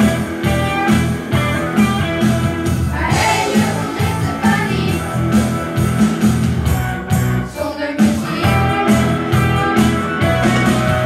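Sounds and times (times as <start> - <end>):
strummed electric guitars: 0.0 - 11.0.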